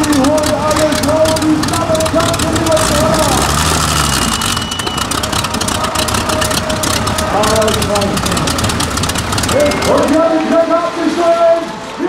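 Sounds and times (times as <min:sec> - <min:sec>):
tractor engine idling unevenly: 0:00.0 - 0:11.9.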